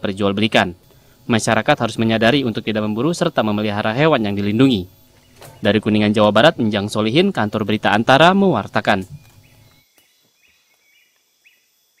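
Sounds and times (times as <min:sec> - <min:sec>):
faint outdoor ambience: 0:00.0 - 0:12.0
bird chirping: 0:04.5 - 0:12.0.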